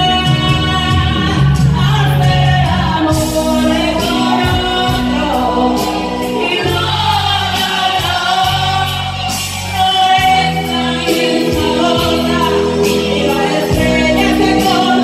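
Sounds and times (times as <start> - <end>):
backing track with bass and drums: 0.0 - 15.0
women singing karaoke: 0.0 - 15.0.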